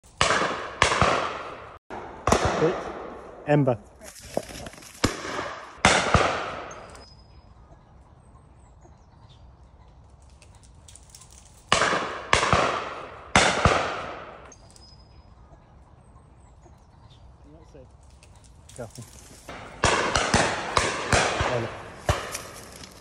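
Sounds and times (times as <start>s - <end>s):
shotguns firing: 0.1s - 3.7s, 5.0s - 7.0s, 11.7s - 14.6s, 19.5s - 23.0s.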